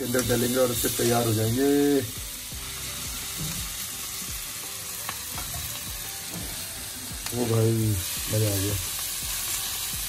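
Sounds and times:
oil and vegetables sizzling: 0:00.0 - 0:10.0.

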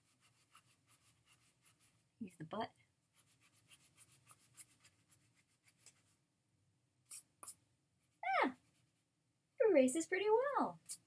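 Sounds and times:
eraser rubbing on paper: 0:00.0 - 0:02.0, 0:03.2 - 0:06.1.

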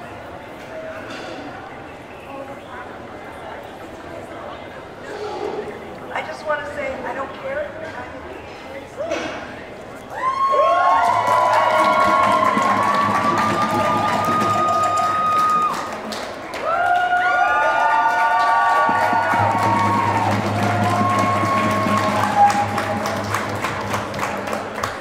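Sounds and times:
hand-clapping: 0:10.9 - 0:25.0.

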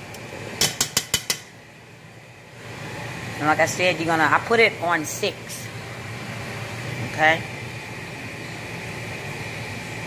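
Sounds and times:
pot boiling with low hiss: 0:00.0 - 0:10.0.

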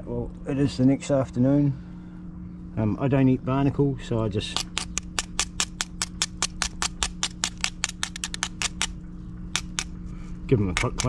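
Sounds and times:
knife scraping shell: 0:04.5 - 0:10.0.

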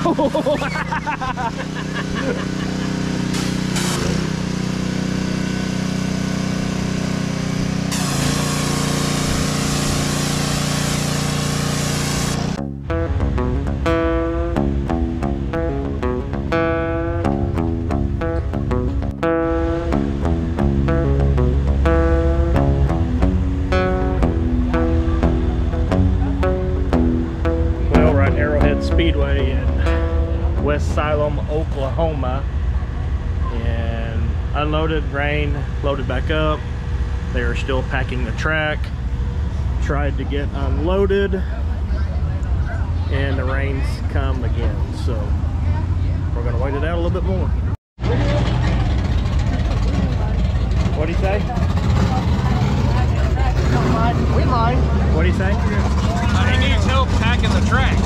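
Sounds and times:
guitar-led song with bass beat: 0:00.0 - 0:58.0
steady motor drone: 0:00.0 - 0:58.0
loud hiss: 0:03.2 - 0:04.0, 0:07.9 - 0:12.6.

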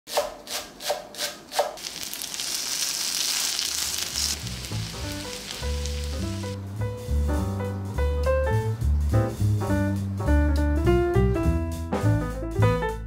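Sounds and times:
batter sizzling in oil: 0:01.8 - 0:06.6
music with bass line: 0:04.4 - 0:13.0.

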